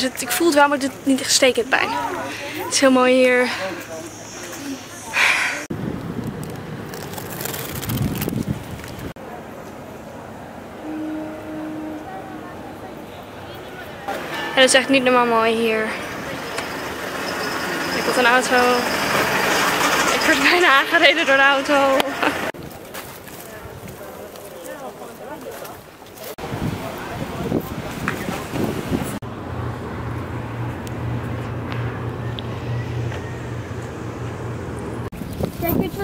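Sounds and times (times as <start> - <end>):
outdoor background noise: 0.0 - 36.0
low motor hum: 29.2 - 35.3.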